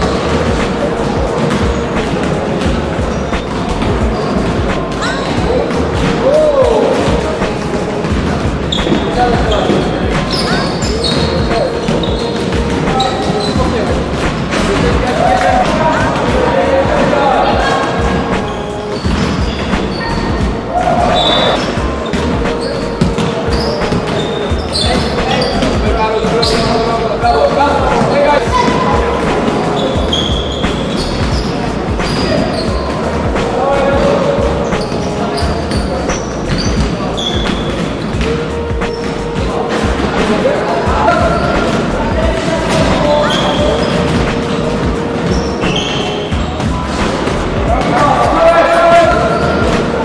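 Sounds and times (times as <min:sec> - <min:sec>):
ball bouncing on floor: 0:00.0 - 0:26.8
players calling out: 0:00.0 - 0:50.0
sneakers squeaking: 0:00.0 - 0:50.0.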